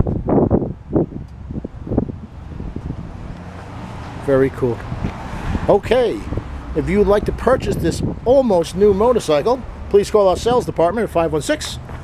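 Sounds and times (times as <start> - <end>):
wind buffeting microphone: 0.0 - 9.6.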